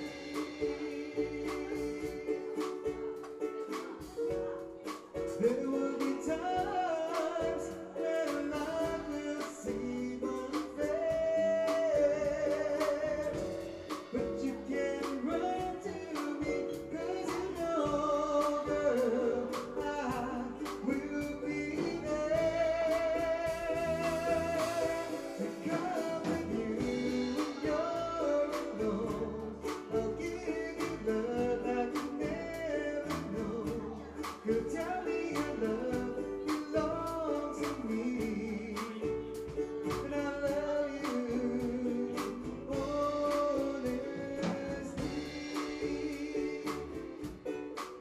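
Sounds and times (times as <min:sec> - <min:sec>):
person singing long notes: 0:00.0 - 0:47.7
band with ukulele bass and drums: 0:00.0 - 0:48.0.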